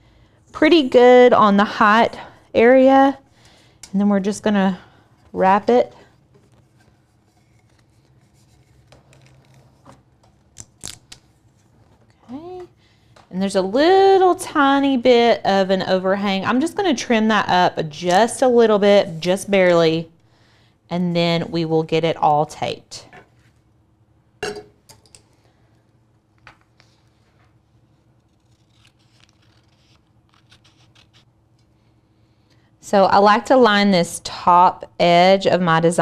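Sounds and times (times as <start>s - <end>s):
soft paper rubbing: 6.4s - 10.0s, 26.7s - 31.3s
paper crinkles: 6.4s - 12.1s, 26.7s - 31.3s
metal tumbler clinking on table: 24.4s - 25.1s.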